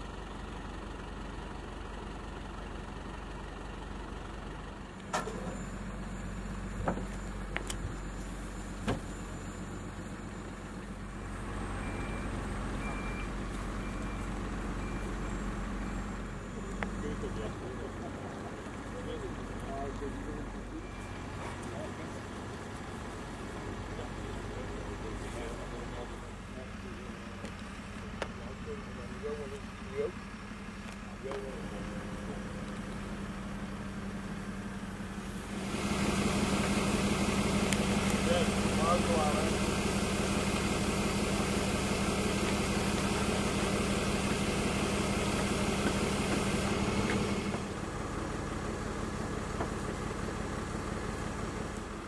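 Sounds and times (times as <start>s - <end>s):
crane hoisting hum: 0.0s - 52.0s
diesel engine running: 0.0s - 52.0s
voices talking: 5.1s - 52.0s.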